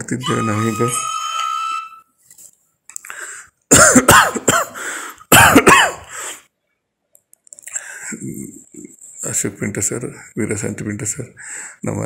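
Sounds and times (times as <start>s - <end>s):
man coughing: 3.7s - 6.1s.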